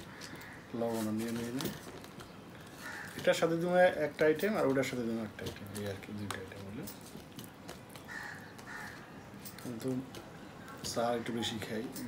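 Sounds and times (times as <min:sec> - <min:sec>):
crow cawing: 0:00.0 - 0:00.8, 0:02.7 - 0:03.2, 0:08.0 - 0:09.3.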